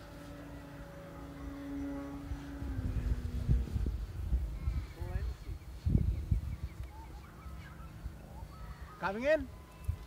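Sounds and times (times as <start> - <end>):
model plane motor droning: 0.0 - 10.0
wind rumble on microphone: 0.0 - 10.0.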